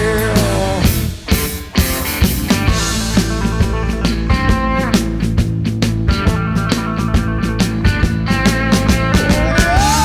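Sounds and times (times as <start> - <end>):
drum beat: 0.0 - 10.0
guitar: 0.0 - 10.0.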